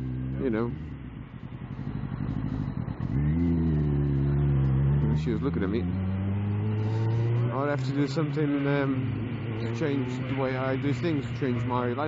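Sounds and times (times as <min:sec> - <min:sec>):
motorcycle engine accelerating: 0:00.0 - 0:12.0.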